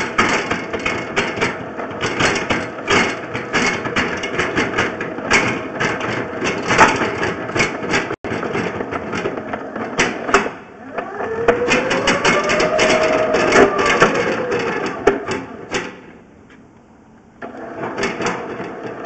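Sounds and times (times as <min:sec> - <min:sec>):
steady mechanical noise: 0:00.0 - 0:19.0.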